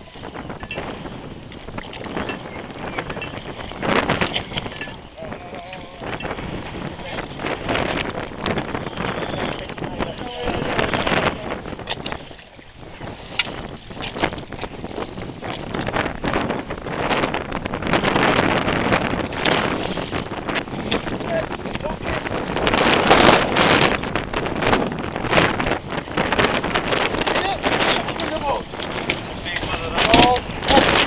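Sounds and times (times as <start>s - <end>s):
water splashing against boat hull: 0.0s - 31.0s
wind buffeting microphone: 0.0s - 31.0s.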